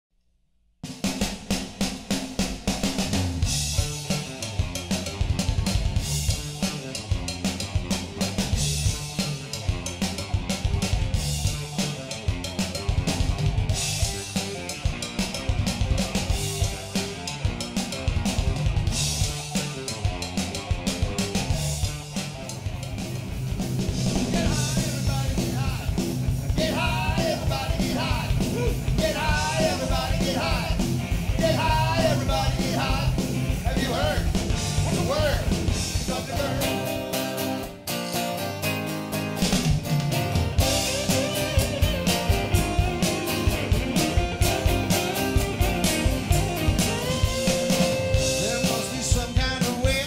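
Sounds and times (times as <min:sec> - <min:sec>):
drum kit: 0:00.8 - 0:50.0
hard rock band playing: 0:01.0 - 0:50.0.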